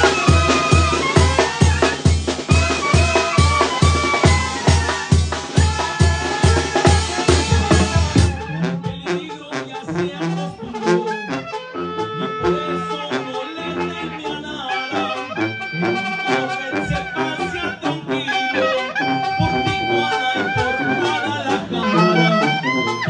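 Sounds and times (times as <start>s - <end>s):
drums and cymbals beat: 0.0s - 9.2s, 19.2s - 23.0s
brass and sousaphone melody: 0.0s - 23.0s.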